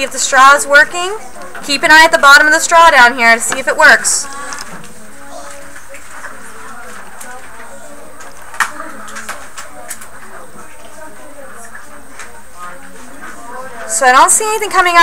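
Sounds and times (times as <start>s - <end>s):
murmur of children's voices: 0.0s - 15.0s.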